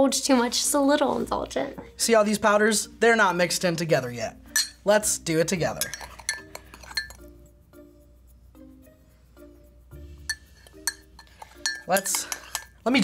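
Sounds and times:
light background music: 0.0 - 13.0
spoon clinking in ceramic mug: 4.5 - 4.8, 5.7 - 7.3, 10.2 - 12.8.

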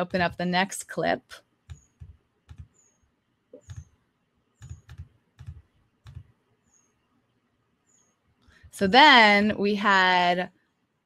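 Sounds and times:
computer clicks and key taps: 1.6 - 4.0, 4.6 - 6.4.

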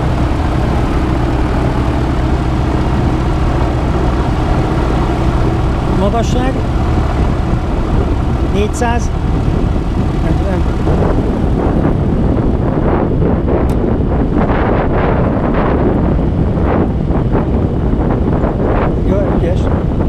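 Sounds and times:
aircraft engine droning: 0.0 - 20.0
wind buffeting microphone: 0.0 - 20.0.

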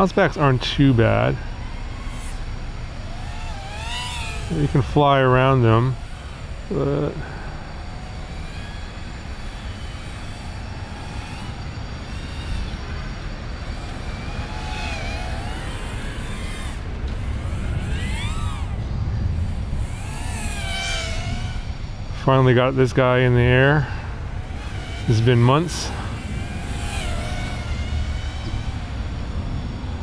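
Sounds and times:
drone propellers buzzing whine: 0.0 - 30.0.

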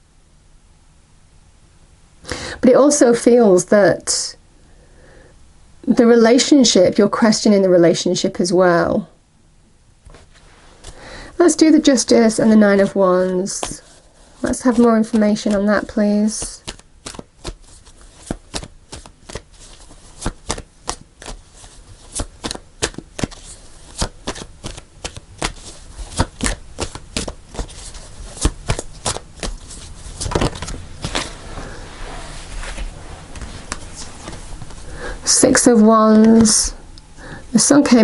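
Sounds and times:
cards being shuffled: 11.6 - 34.9.

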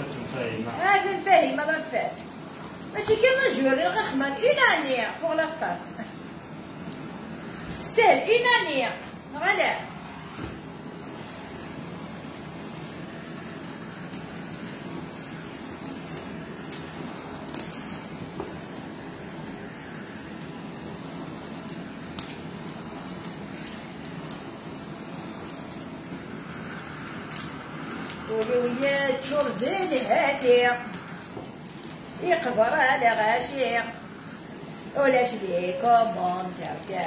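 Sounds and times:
blowtorch flame hissing: 0.0 - 37.0.

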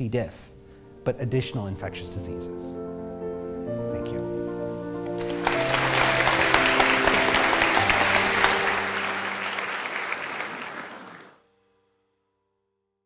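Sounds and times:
closing music: 0.0 - 11.4
audience applauding: 5.1 - 11.4.

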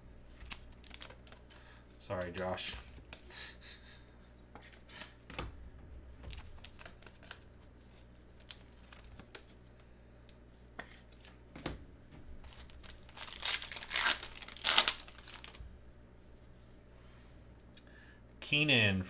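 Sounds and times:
low room hum: 0.0 - 19.0
trading cards being handled: 0.3 - 3.3, 12.4 - 15.6
foil pack crinkling: 0.3 - 3.5, 6.3 - 9.5, 12.4 - 15.6.

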